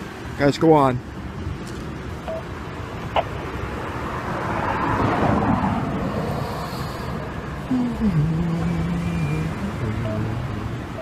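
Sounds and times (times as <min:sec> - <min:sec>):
vehicle passing by: 0:03.0 - 0:11.0.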